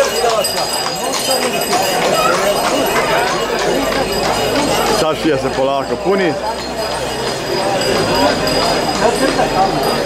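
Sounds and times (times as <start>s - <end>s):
horse hooves on asphalt: 0.0s - 9.9s
crowd talking: 0.0s - 10.0s.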